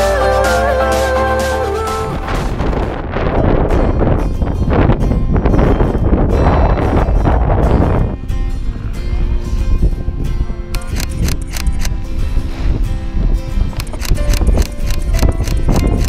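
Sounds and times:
wind buffeting microphone: 0:02.0 - 0:16.0.

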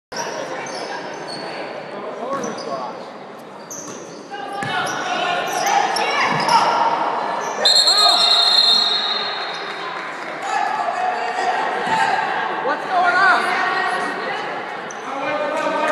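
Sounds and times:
voices of players and spectators: 0:00.1 - 0:15.9
sneakers squeaking on hardwood: 0:02.2 - 0:02.8, 0:03.6 - 0:06.7
referee's whistle blast: 0:07.6 - 0:09.4.

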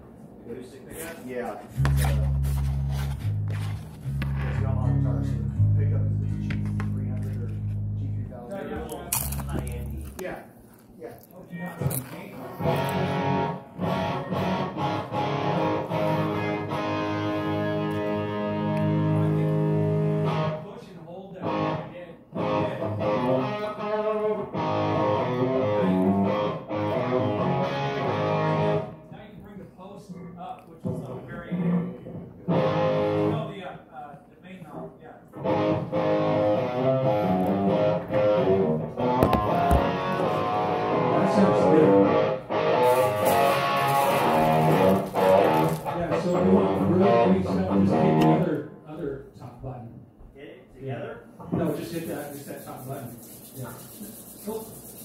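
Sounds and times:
amplified guitar playing: 0:01.8 - 0:10.0, 0:12.6 - 0:20.7, 0:21.4 - 0:29.0, 0:32.5 - 0:33.4, 0:35.4 - 0:48.5.

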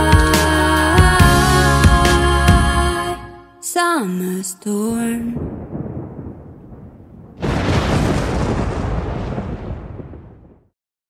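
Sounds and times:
thunder rumble and crack: 0:05.0 - 0:10.7.

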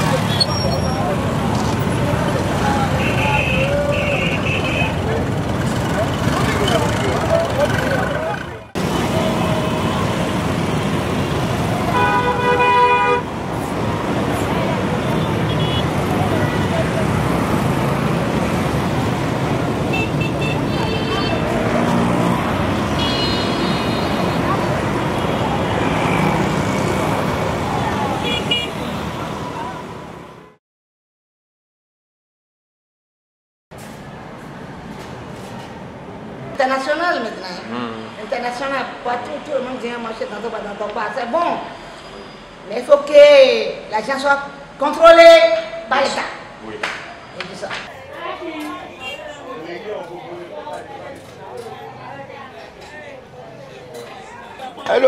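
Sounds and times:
people talking: 0:00.0 - 0:09.7, 0:37.2 - 0:41.2
motorcycles and cars in traffic: 0:00.0 - 0:30.6, 0:33.7 - 0:55.0
horn toots: 0:11.9 - 0:13.3.

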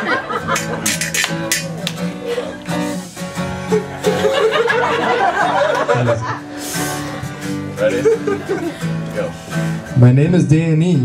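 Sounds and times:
guitar strumming: 0:00.0 - 0:11.0.

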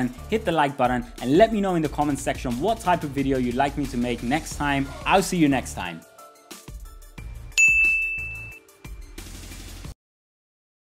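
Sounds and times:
quiet music with soft beat: 0:00.0 - 0:09.9
bright bell-like ding: 0:07.5 - 0:08.6.

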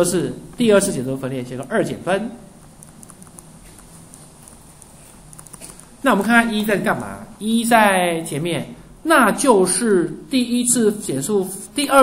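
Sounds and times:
steady low hiss: 0:00.0 - 0:12.0
quick clicks and light taps: 0:02.6 - 0:05.9.

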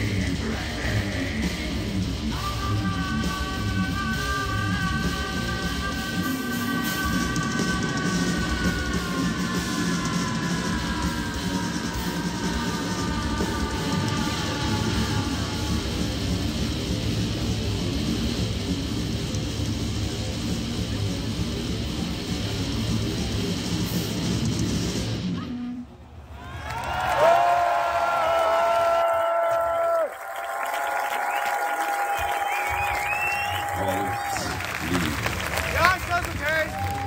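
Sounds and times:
metal band playing: 0:00.0 - 0:25.6
crowd cheering and whistling: 0:25.4 - 0:37.0.

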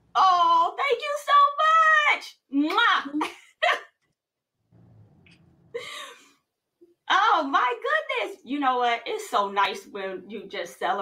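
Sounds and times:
woman speaking: 0:00.2 - 0:03.8, 0:07.1 - 0:11.0.

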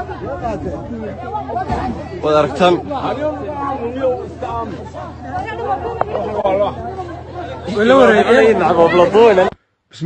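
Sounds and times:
overlapping chatter of voices: 0:00.0 - 0:10.0.

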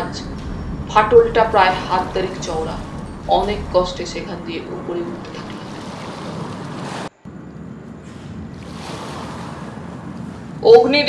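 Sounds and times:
sea waves and surf: 0:00.0 - 0:11.0.

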